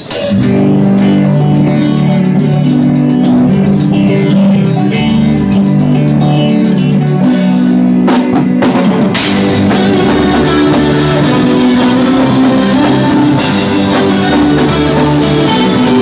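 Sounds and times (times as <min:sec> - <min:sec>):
drum kit cymbal beat: 0:00.0 - 0:16.0
electric bass: 0:00.0 - 0:16.0
electric guitar chords: 0:00.0 - 0:16.0
heavy drum hits: 0:07.2 - 0:16.0.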